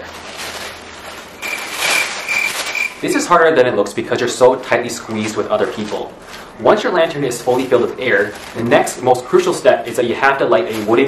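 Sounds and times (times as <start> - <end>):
paper bag rustling and crinkling: 0.0 - 11.0
thin high tone pulses: 1.4 - 3.1.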